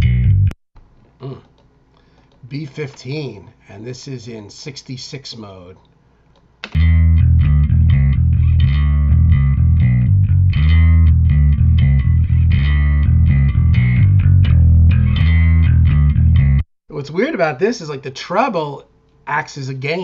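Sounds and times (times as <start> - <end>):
plucked electric bass line: 0.0 - 0.6, 6.7 - 16.7.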